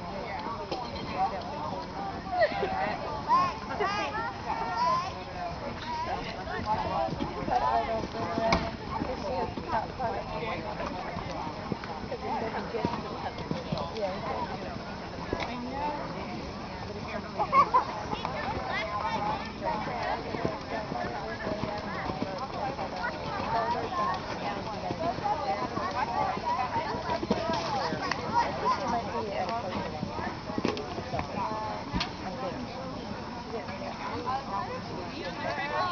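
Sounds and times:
background chatter: 0:00.0 - 0:35.9
voices talking: 0:00.0 - 0:35.9.

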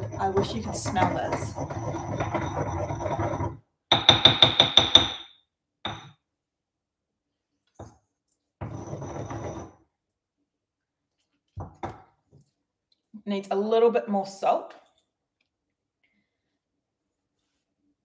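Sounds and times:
pestle grinding in mortar: 0:00.0 - 0:05.2
pestle knocks: 0:03.9 - 0:05.3.

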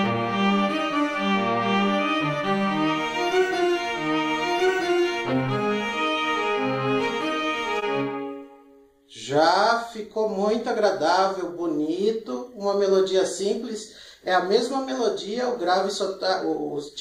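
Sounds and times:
cello lower harmony: 0:00.0 - 0:08.8
violin melody: 0:00.0 - 0:08.9.

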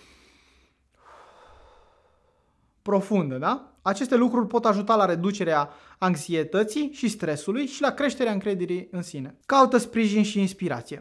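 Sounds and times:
man exhaling breathily: 0:00.0 - 0:02.8
speech: 0:02.8 - 0:11.0.

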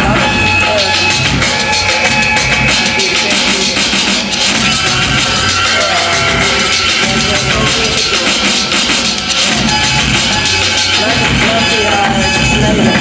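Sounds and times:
electronic hip-hop beat: 0:00.0 - 0:13.0.

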